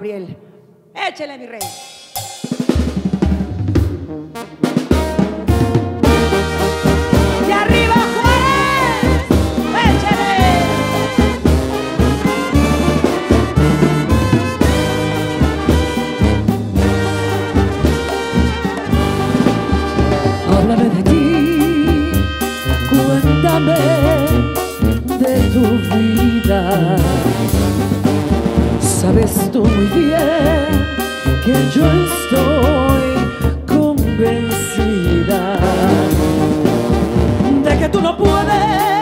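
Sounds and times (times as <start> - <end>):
drums: 1.0 - 39.0
snare drum rolls: 2.7 - 20.7
pulsing tuba bass: 3.0 - 39.0
brass playing loud held chords: 3.9 - 38.9.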